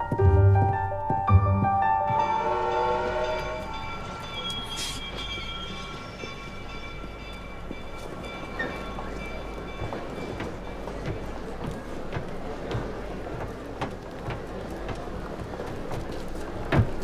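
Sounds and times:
piano music: 0.0s - 11.6s
train rumble and hiss: 2.2s - 17.0s.

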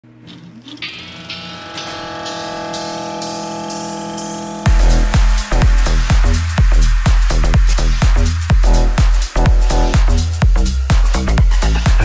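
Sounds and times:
sustained synth chord: 0.8s - 10.4s.

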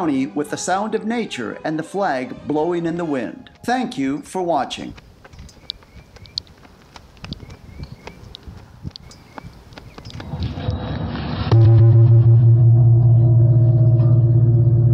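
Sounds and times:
gong struck and ringing: 11.4s - 14.9s.

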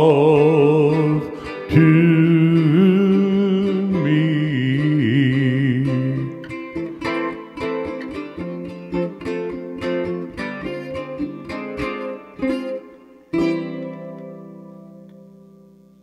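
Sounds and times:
ukulele picking and chord: 0.0s - 16.0s.

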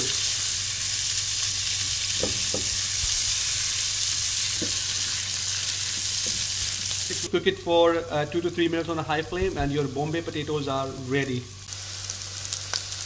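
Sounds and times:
food sizzling in hot oil: 0.0s - 7.3s, 9.4s - 13.0s.

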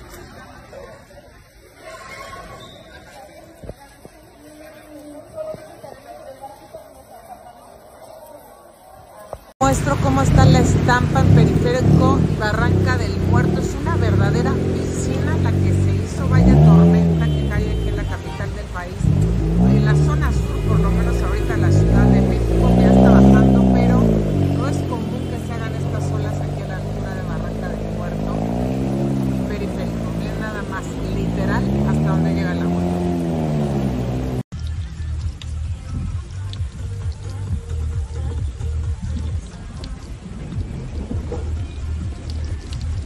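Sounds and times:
car traffic through floodwater: 0.0s - 43.0s
person talking: 9.6s - 33.4s.

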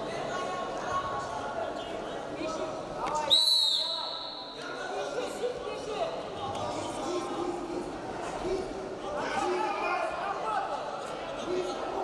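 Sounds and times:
voices in a hall: 0.0s - 12.0s
referee's whistle blast: 3.3s - 4.6s.

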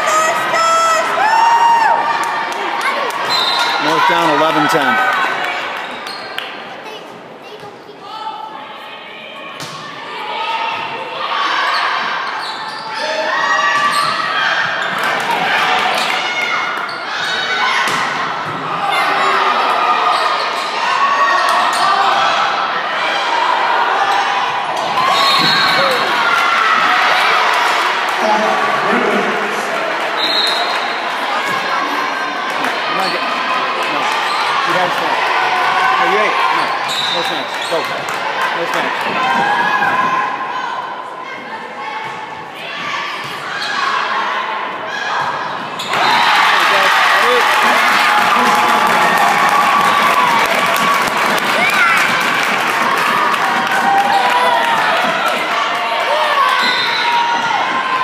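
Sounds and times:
players and spectators shouting: 0.0s - 6.0s, 8.1s - 58.0s.

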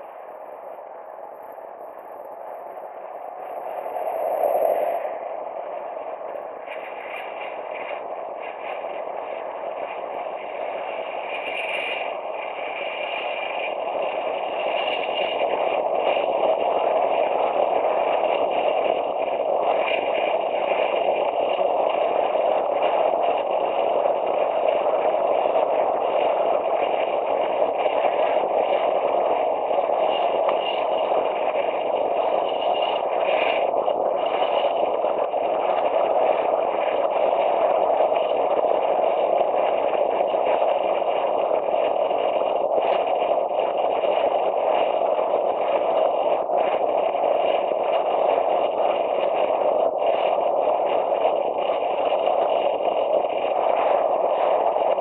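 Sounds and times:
bicycle tyre road noise: 0.0s - 55.0s
wind on microphone: 0.0s - 55.0s.

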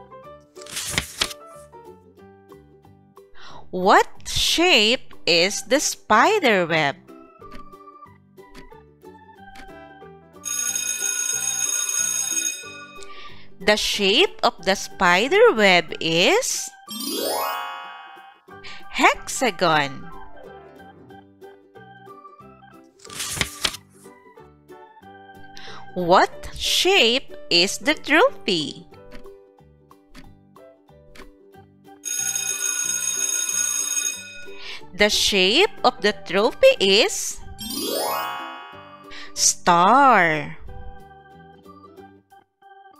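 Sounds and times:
light children's music: 0.0s - 32.4s, 33.1s - 42.9s
alarm clock bell ringing: 10.4s - 13.0s, 32.0s - 34.6s, 37.8s - 39.1s.

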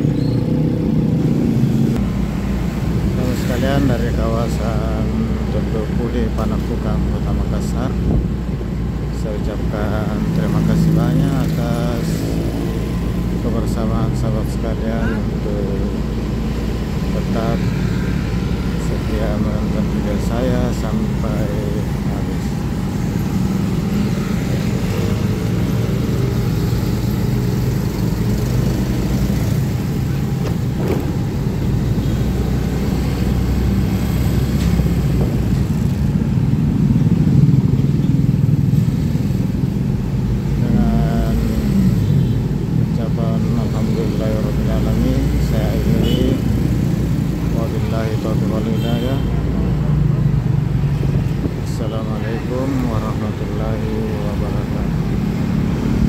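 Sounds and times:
motorcycles running: 0.0s - 56.0s
street traffic noise: 0.0s - 56.0s.

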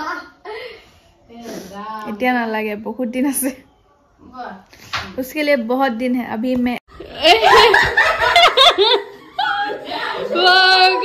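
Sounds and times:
people laughing: 7.1s - 11.0s.

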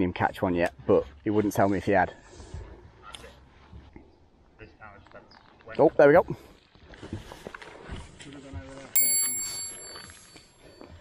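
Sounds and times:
bright metallic ring: 9.0s - 10.9s.

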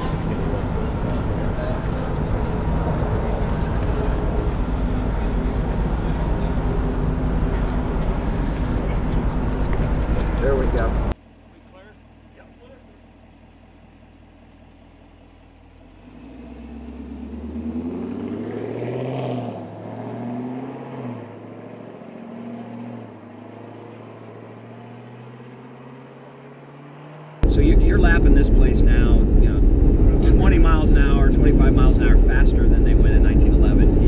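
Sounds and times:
car engine accelerating: 0.0s - 11.2s, 11.8s - 34.0s.

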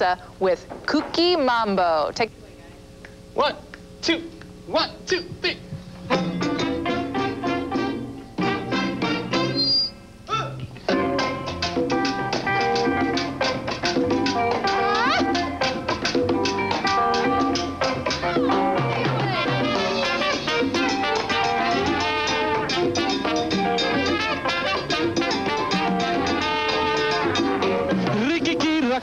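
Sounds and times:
bass: 1.3s - 29.0s
conga drums: 3.0s - 9.9s, 10.8s - 29.0s
sharp percussion strikes: 3.7s - 9.9s, 10.9s - 28.7s
horns and strings melody: 6.2s - 9.9s, 10.9s - 15.8s, 16.8s - 28.2s.

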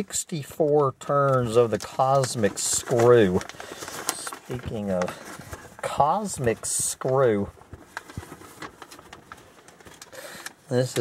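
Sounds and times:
small clicks and rustles: 1.3s - 11.0s.

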